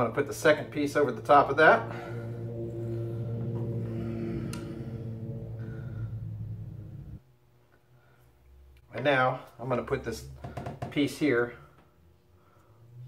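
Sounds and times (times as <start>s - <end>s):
low machine hum: 0.0s - 7.4s.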